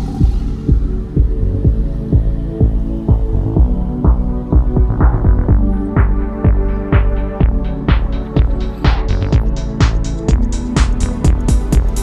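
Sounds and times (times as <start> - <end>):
electronic music with kick drum: 0.0 - 12.0.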